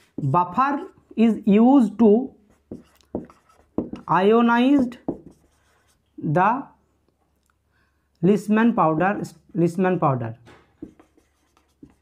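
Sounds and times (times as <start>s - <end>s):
marker pen writing on whiteboard: 0.0s - 1.4s, 2.4s - 6.1s, 10.6s - 12.0s.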